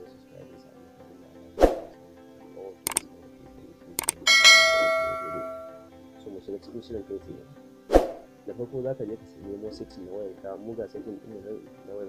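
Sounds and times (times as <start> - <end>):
mouse click: 4.0 - 4.3
notification bell strike: 4.0 - 5.8.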